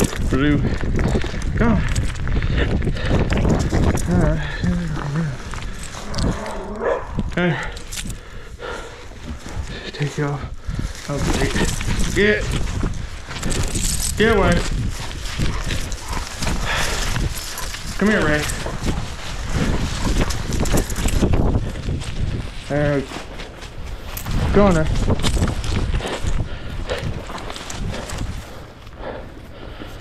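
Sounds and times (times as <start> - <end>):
microphone jostling: 0.0 - 8.2, 9.0 - 28.8
wind rumble: 0.0 - 30.0
dog breathing: 5.4 - 12.2, 12.8 - 21.9
paws scuffing dry leaves: 9.0 - 28.9.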